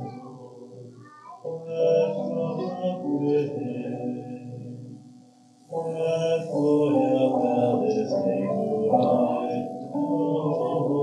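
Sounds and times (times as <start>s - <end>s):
man singing: 0.0s - 5.0s, 5.7s - 11.0s.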